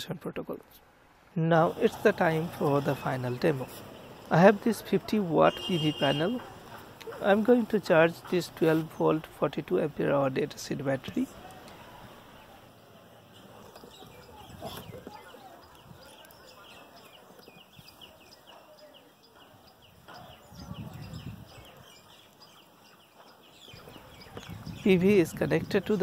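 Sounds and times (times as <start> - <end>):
faint birds chirping: 0.6 - 26.0.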